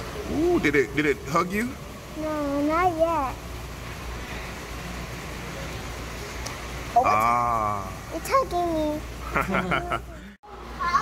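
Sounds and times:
steady hum and hiss: 0:00.0 - 0:11.0.

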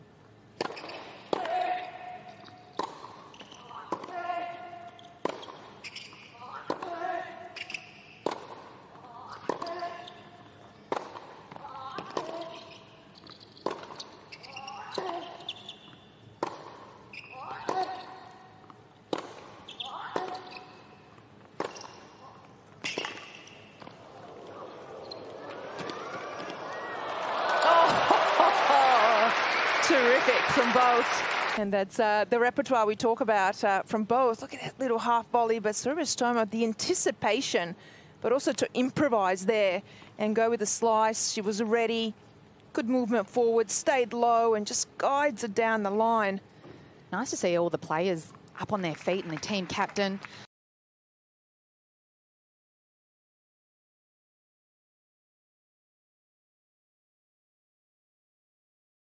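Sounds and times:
racket hitting tennis ball: 0:00.6 - 0:01.9, 0:02.7 - 0:04.5, 0:05.2 - 0:10.1, 0:10.9 - 0:12.6, 0:13.6 - 0:14.2, 0:16.4 - 0:20.8, 0:21.6 - 0:22.2, 0:22.8 - 0:24.0
crowd cheering and applause: 0:24.7 - 0:31.6.

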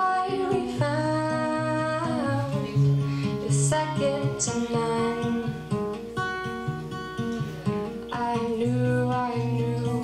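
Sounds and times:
fingerpicked acoustic guitar: 0:00.0 - 0:10.0.

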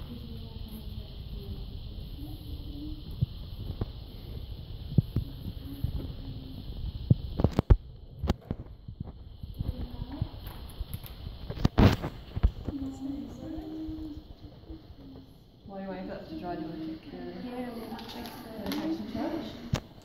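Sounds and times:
faint background voices: 0:00.0 - 0:07.6.

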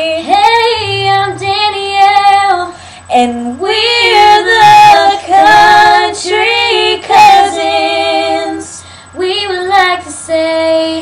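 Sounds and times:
girls singing: 0:00.0 - 0:11.0.

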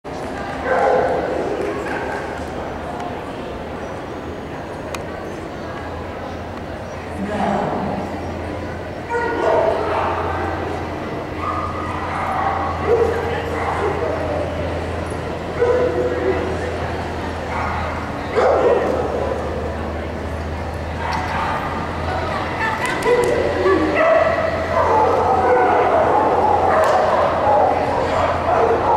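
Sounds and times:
background chatter: 0:00.0 - 0:28.9
people's voices: 0:00.1 - 0:28.9
steady low hum: 0:00.1 - 0:28.9
dog barking: 0:00.6 - 0:01.3, 0:11.4 - 0:14.1, 0:15.6 - 0:16.2, 0:17.5 - 0:19.0, 0:23.0 - 0:28.9.

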